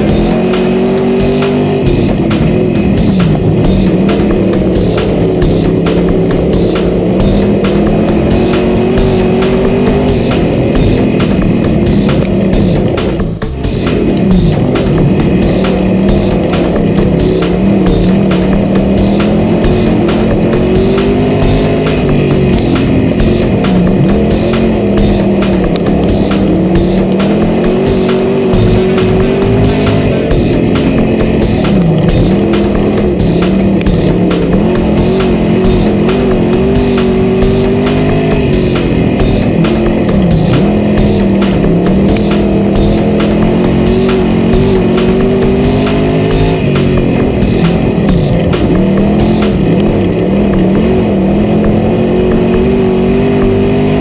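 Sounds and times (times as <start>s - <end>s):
background music: 0.0s - 54.0s
race car engine at speed: 0.0s - 54.0s.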